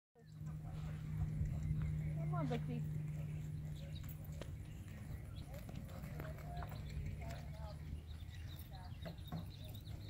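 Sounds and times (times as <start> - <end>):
faint voices: 0.2 - 10.0
steady low hum: 0.2 - 10.0
horse hooves on dirt: 0.3 - 10.0.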